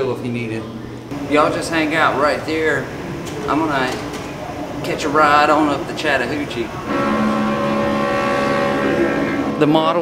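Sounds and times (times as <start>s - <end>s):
steam whistle blast: 6.8s - 9.7s.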